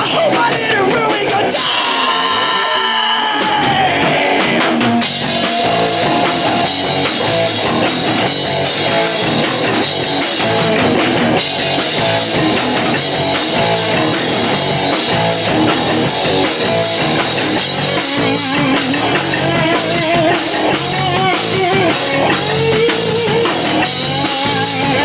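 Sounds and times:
drum kit beat: 0:00.0 - 0:25.0
electric guitars: 0:00.0 - 0:25.0.

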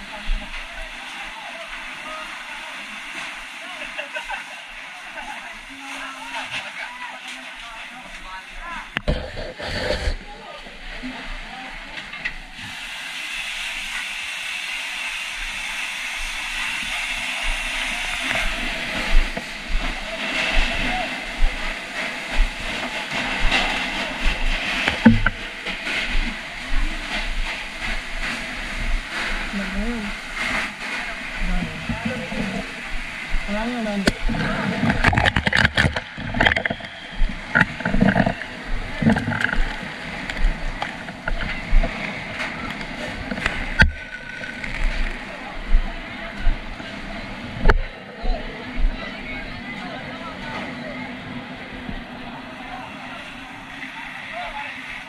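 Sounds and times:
fire hose water spray hissing: 0:00.0 - 0:47.0.

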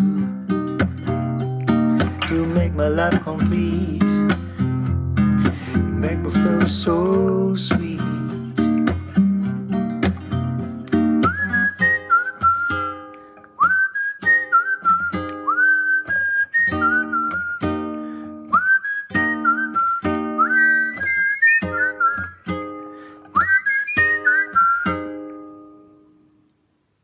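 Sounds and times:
acoustic guitar chords: 0:00.0 - 0:26.6
person whistling melody: 0:11.2 - 0:25.4.

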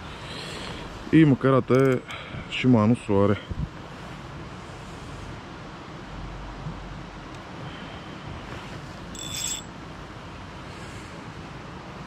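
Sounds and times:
outdoor background noise: 0:00.0 - 0:12.0
fishing reel whirring: 0:09.2 - 0:09.7.

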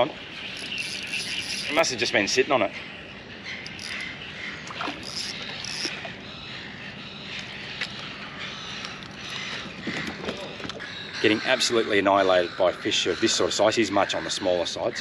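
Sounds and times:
fishing reel whirring: 0:00.4 - 0:02.2, 0:03.6 - 0:04.1, 0:04.8 - 0:06.0
reel clicks: 0:00.5 - 0:02.1, 0:03.6 - 0:04.1, 0:04.7 - 0:06.0.

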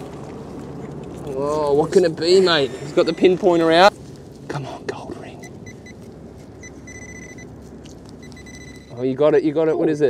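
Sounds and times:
metal detector high beeps: 0:03.0 - 0:03.4, 0:06.6 - 0:07.5, 0:08.2 - 0:09.0.

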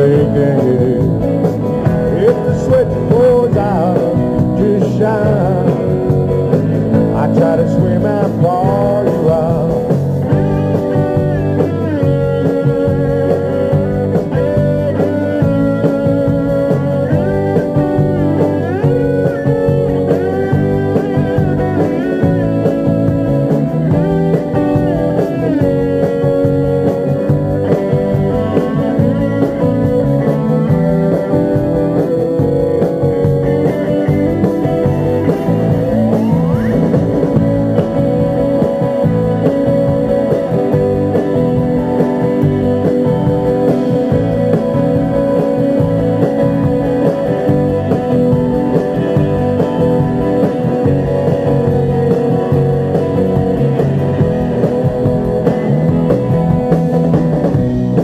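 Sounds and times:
electric guitars: 0:00.0 - 0:58.0
live rock band playing: 0:00.0 - 0:58.0.

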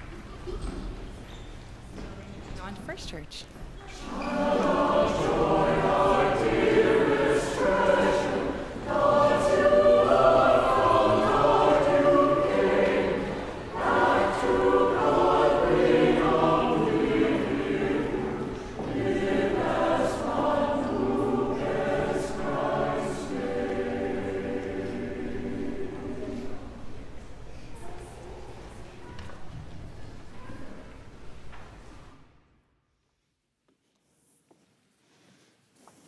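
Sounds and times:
church choir singing: 0:03.8 - 0:27.3.

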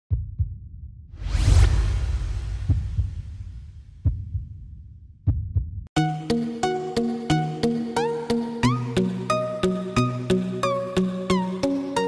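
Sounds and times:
muffled heartbeat thumps: 0:00.1 - 0:00.9, 0:01.9 - 0:05.9.

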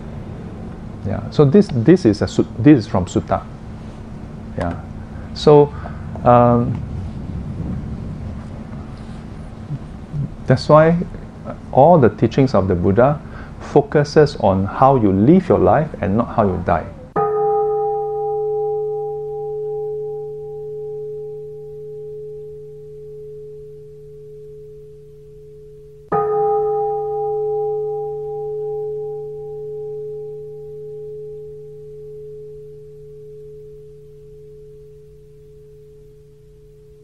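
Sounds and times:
singing bowl ringing: 0:17.1 - 0:37.0.

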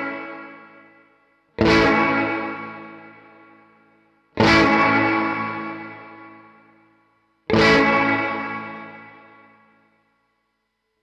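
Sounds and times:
electric guitar chord ringing: 0:00.0 - 0:09.9.

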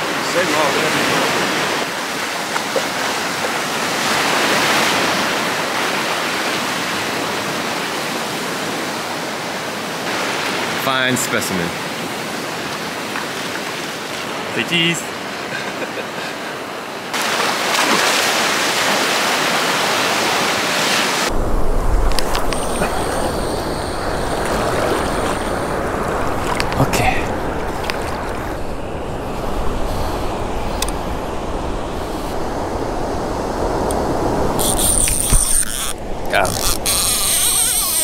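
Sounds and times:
surf washing and fizzing: 0:00.0 - 0:38.0
wind rushing: 0:20.3 - 0:37.0
fishing reel clicks: 0:34.6 - 0:38.0.

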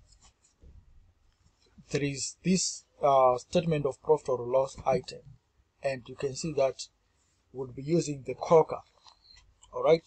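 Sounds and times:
man talking: 0:01.9 - 0:06.9, 0:07.6 - 0:08.9, 0:09.8 - 0:10.0.

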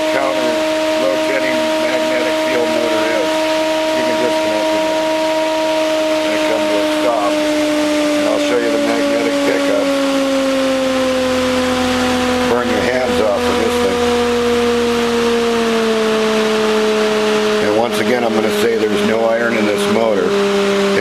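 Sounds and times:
electric motor humming: 0:00.0 - 0:21.0.

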